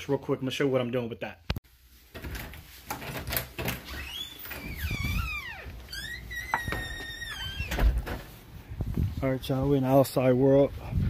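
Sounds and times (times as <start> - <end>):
door squeaking: 3.0 - 8.3.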